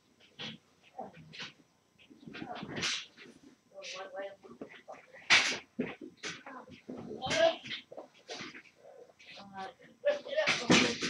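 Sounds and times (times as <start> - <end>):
muffled voices: 0.2 - 11.0.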